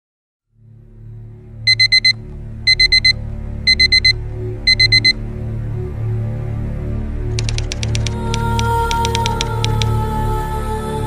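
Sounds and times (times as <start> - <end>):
low steady music bed: 0.5 - 11.0
digital alarm clock beeping: 1.7 - 5.2, 7.4 - 8.1.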